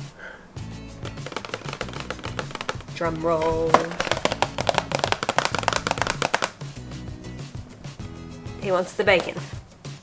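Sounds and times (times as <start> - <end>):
background music: 0.0 - 10.0
rapid drum roll: 1.2 - 6.6.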